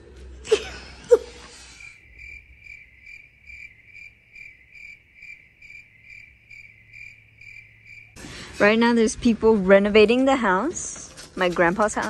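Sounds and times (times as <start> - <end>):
cricket chirping: 1.5 - 8.2.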